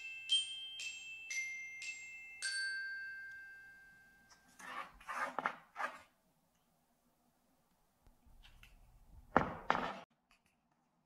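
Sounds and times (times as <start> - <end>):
glockenspiel-like chime note: 0.0 - 4.4.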